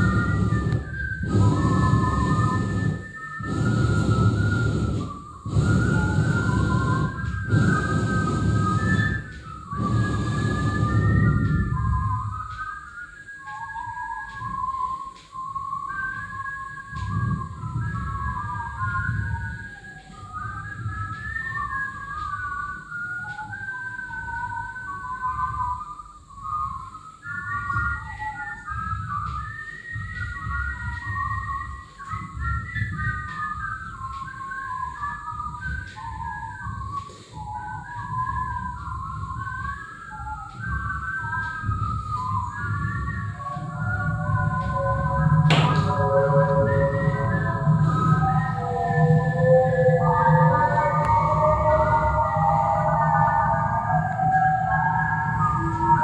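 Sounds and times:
low-pitched accompaniment: 0.0s - 12.5s, 41.4s - 56.0s
whistled melody: 0.0s - 56.0s.

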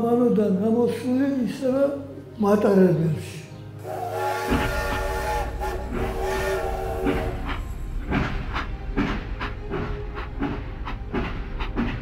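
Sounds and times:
background music: 0.0s - 12.0s
multi-tone whistle blasts: 3.8s - 7.7s
steady low rumble: 4.5s - 12.0s.

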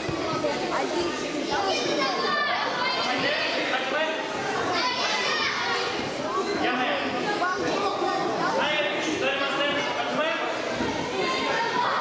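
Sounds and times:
children shouting in a large hall: 1.4s - 6.6s, 10.5s - 12.0s.

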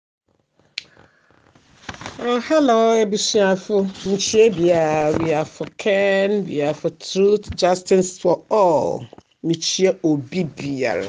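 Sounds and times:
faint low noise: 0.8s - 11.0s.

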